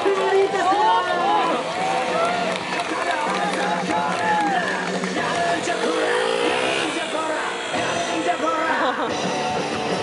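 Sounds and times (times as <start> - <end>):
music playing: 1.6 - 10.0
motorcycle engine revving: 3.8 - 10.0.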